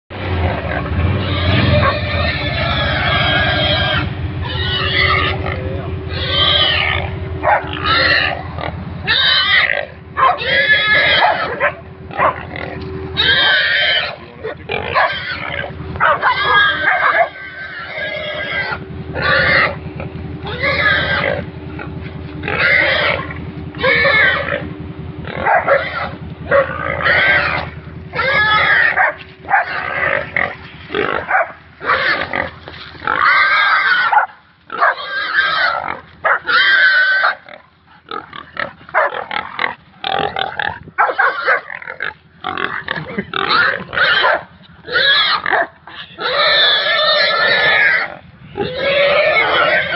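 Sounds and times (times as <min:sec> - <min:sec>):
pig squealing loudly: 0:00.4 - 0:49.9.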